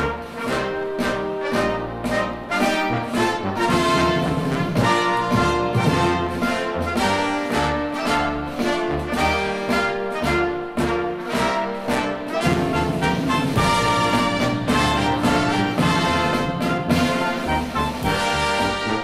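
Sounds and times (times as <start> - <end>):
orchestra playing anthem: 0.0 - 19.0.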